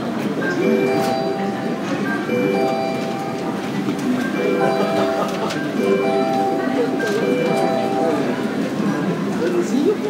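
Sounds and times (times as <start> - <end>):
murmur of crowd: 0.0 - 10.0
electronic boarding chime: 0.4 - 8.6.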